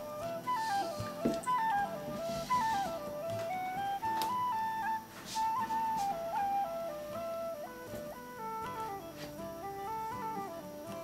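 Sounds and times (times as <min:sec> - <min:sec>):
flute melody: 0:00.0 - 0:11.0.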